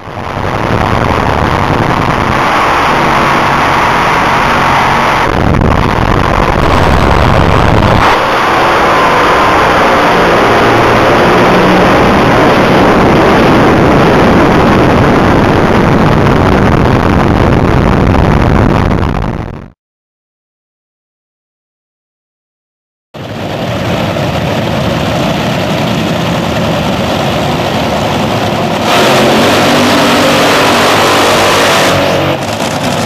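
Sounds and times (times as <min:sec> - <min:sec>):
rushing air: 0:00.0 - 0:19.3, 0:23.2 - 0:33.0
dragster engine roaring: 0:00.0 - 0:19.4, 0:23.2 - 0:33.0.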